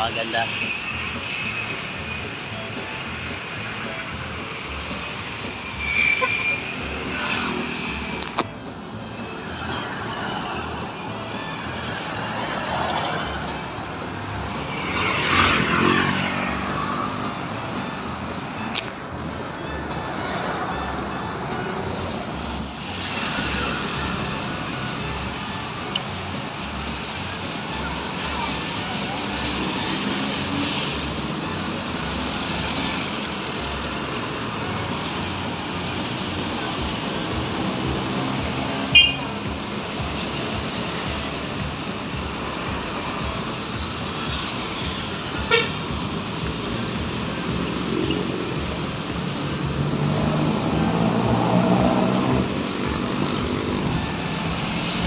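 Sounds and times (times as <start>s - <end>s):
city traffic passing: 0.0s - 55.0s
road noise from riding: 0.0s - 55.0s
vehicle passing: 6.6s - 25.6s, 42.5s - 55.0s.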